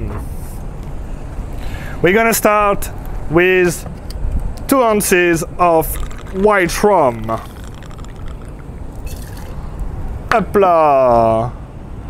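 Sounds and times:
liquid pouring into metal tin: 0:05.8 - 0:09.8.

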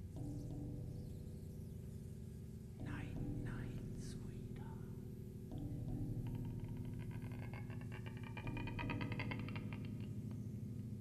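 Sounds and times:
person whispering: 0:02.8 - 0:05.0.

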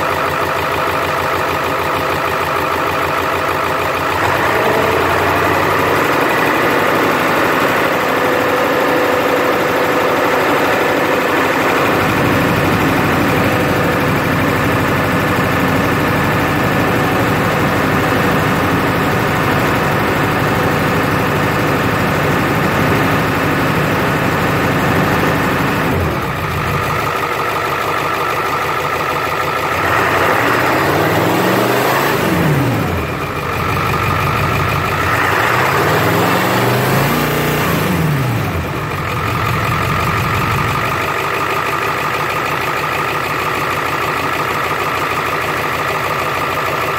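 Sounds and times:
diesel engine idling and revving: 0:00.0 - 0:46.9.

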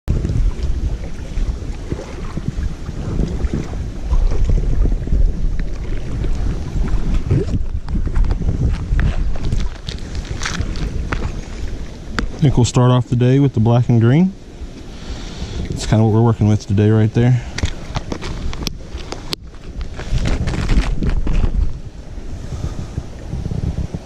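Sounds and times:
wind buffeting microphone: 0:00.0 - 0:24.0
sleeve rubbing microphone: 0:00.1 - 0:11.7, 0:17.8 - 0:24.0.

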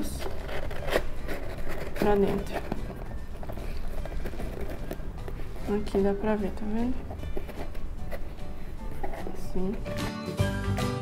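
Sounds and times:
cardboard clicks and scrapes: 0:00.0 - 0:06.2, 0:07.0 - 0:10.0.

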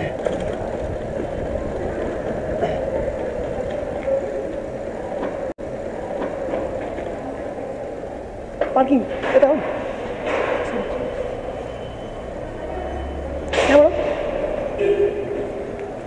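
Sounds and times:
wind on microphone: 0:00.0 - 0:05.5
bike rolling on concrete: 0:00.0 - 0:16.0.

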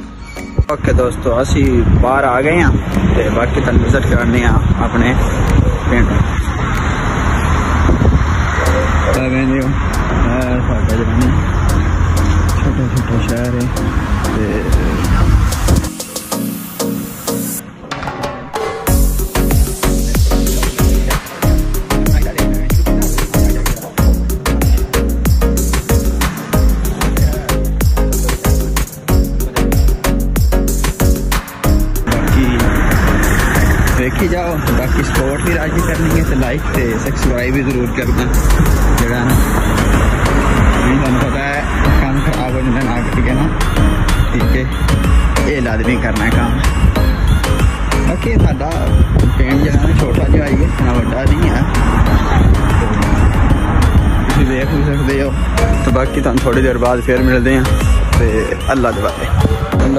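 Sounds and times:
people's voices: 0:00.0 - 0:59.9
road traffic rumble: 0:00.0 - 0:59.9
cars driving slowly past: 0:01.1 - 0:15.7, 0:31.5 - 0:45.4, 0:50.5 - 0:57.1.

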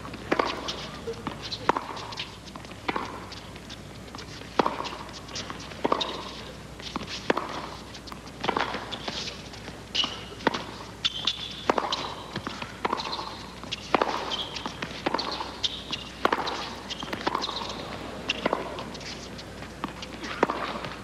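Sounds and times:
tennis ball bouncing: 0:00.0 - 0:21.0
racket striking tennis ball: 0:00.1 - 0:09.4, 0:10.0 - 0:21.0
shoe squeaks on court: 0:10.0 - 0:10.4, 0:11.0 - 0:19.4.

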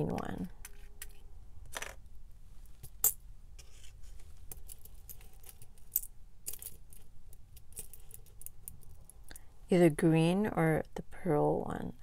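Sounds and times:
beads rattling inside pots: 0:02.8 - 0:09.5.

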